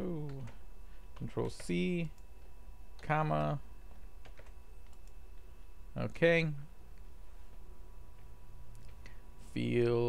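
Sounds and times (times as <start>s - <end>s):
low hum: 0.0s - 10.0s
computer keyboard keystrokes: 3.9s - 5.2s.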